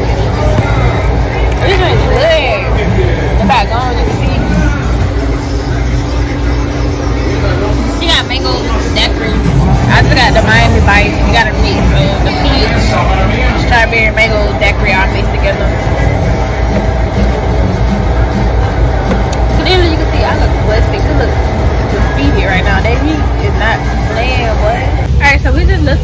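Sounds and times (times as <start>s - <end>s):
people chattering: 0.0s - 26.0s
steady low rumble: 0.0s - 26.0s.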